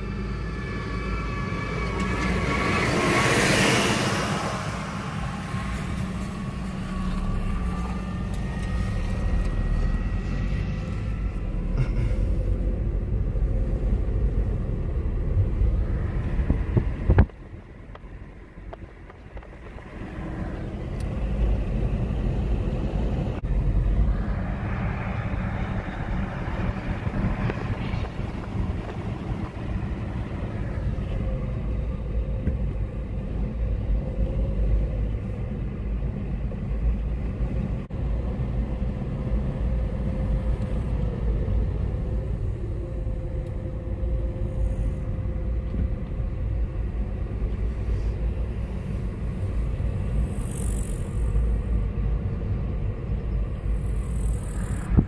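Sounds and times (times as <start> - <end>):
car engine and tyre rumble: 0.0 - 55.0.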